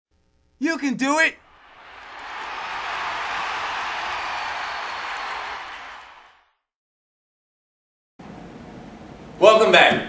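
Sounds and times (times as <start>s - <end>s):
crowd applause and cheering: 1.4s - 6.7s.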